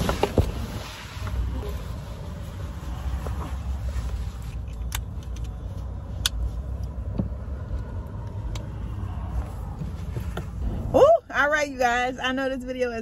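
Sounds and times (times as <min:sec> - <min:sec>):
low steady rumble: 0:00.0 - 0:13.0
buckle clicks: 0:04.5 - 0:08.7.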